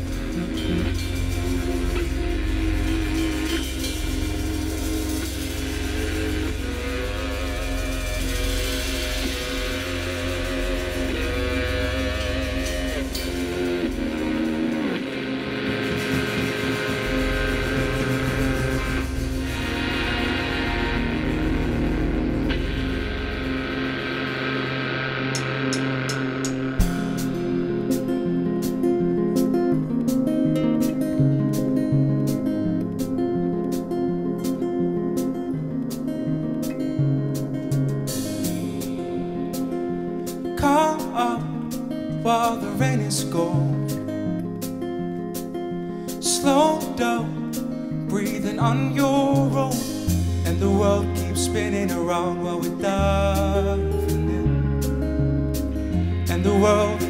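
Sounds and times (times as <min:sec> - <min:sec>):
cymbal ticks: 0:00.0 - 0:30.2
live band playing instrumental: 0:00.0 - 0:41.8
picked guitar figure: 0:00.0 - 0:57.0.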